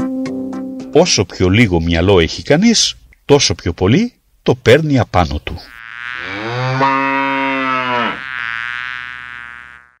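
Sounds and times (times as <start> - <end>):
bull mooing: 5.9 - 9.9.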